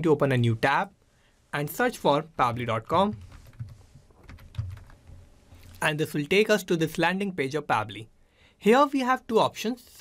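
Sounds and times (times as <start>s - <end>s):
keyboard keys clicking: 3.0s - 5.2s.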